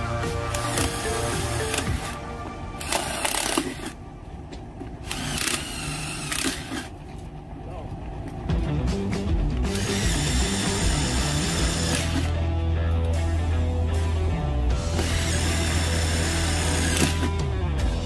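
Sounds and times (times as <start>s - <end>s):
background music: 0.0s - 4.5s, 8.4s - 18.0s
cordless drill whining: 2.8s - 4.0s, 5.0s - 7.0s, 9.7s - 12.4s, 14.9s - 17.4s.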